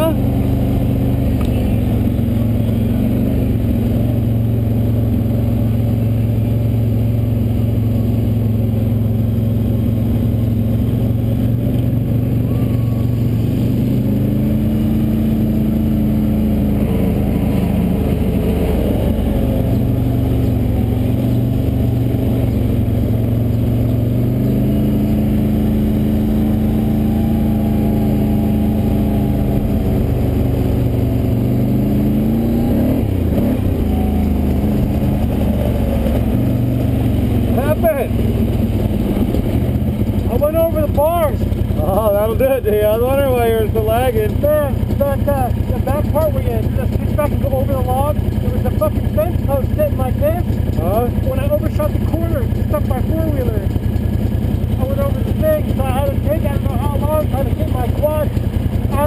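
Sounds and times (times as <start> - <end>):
quad bike engine running: 0.0 - 59.0.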